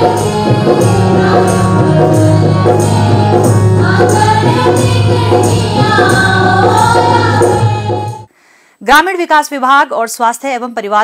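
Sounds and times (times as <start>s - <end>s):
group of voices singing: 0.0s - 8.3s
percussion beat: 0.0s - 8.3s.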